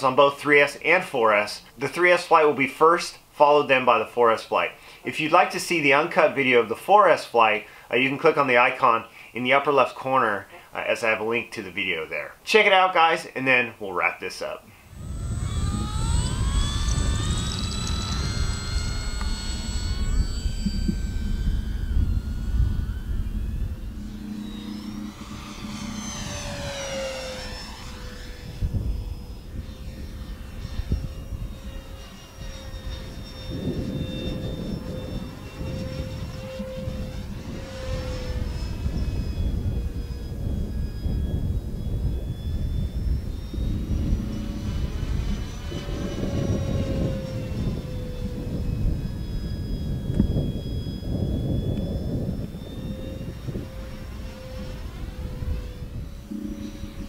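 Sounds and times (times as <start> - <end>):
model plane motor whine: 0.0 - 12.3, 14.5 - 57.0
low rumble: 14.7 - 57.0.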